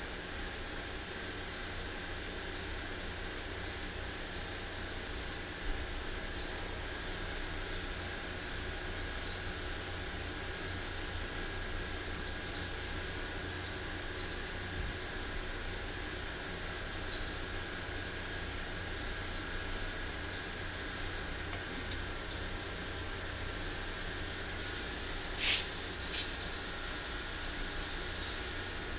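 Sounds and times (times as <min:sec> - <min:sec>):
steady background hiss: 0:00.0 - 0:28.9.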